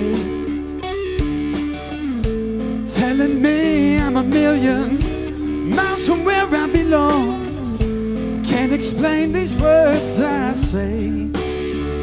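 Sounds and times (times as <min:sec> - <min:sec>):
bass guitar: 0:00.0 - 0:12.0
electric guitar bending melody: 0:00.0 - 0:12.0.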